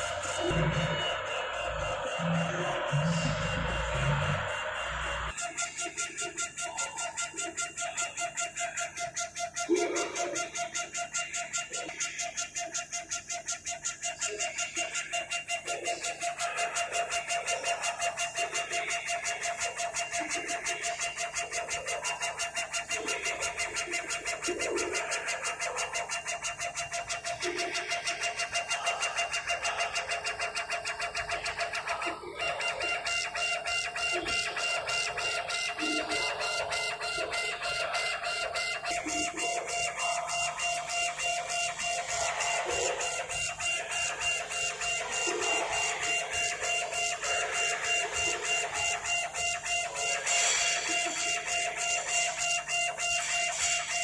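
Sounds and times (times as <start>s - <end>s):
motor whine: 0.0s - 5.3s
laser engraver carriage whirring: 0.0s - 54.0s.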